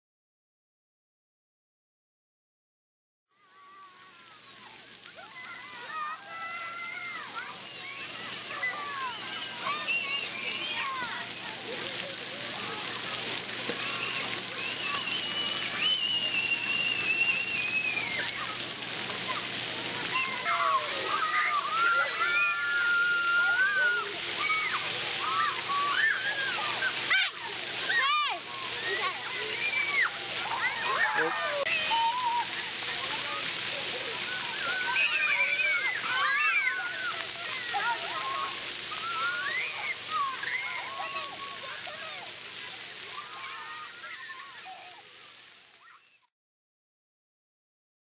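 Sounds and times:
children shouting and squealing: 3.3s - 46.3s
water jets splashing: 3.5s - 46.2s.

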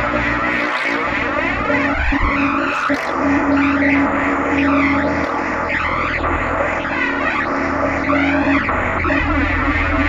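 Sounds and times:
sweeping noise rising in pitch: 0.0s - 10.0s.

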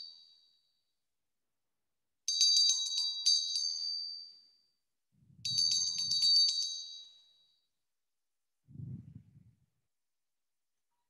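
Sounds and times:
small high-pitched bell ringing: 0.0s - 1.0s, 2.3s - 7.8s.

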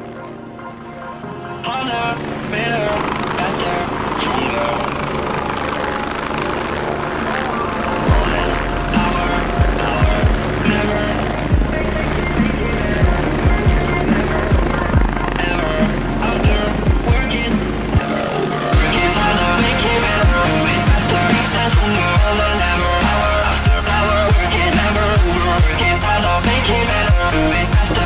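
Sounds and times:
helicopter rotor and turbine: 0.0s - 28.0s
sustained synth tones: 0.0s - 28.0s.

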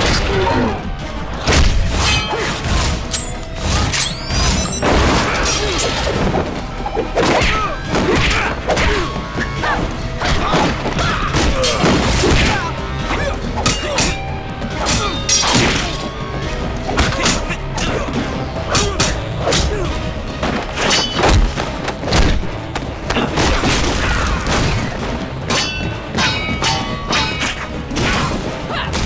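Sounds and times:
action music: 0.0s - 29.0s.

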